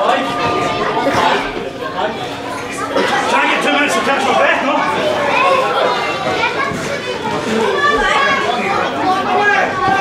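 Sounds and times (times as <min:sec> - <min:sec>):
children's voices: 0:00.0 - 0:10.0
crowd shouting: 0:02.8 - 0:10.0.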